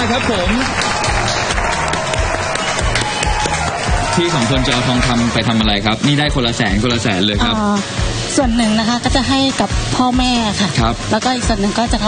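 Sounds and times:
applause and clapping: 0.0 - 6.6
game-show music with steady beat: 0.0 - 12.0.

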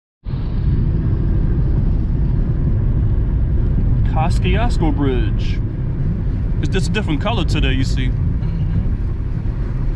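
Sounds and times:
car engine rumble: 0.2 - 9.9.

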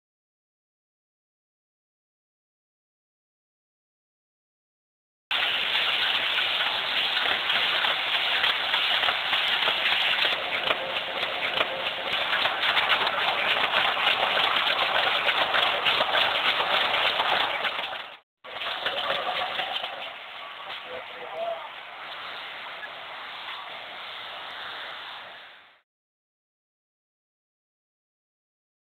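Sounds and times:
printing press clattering: 7.1 - 18.0.

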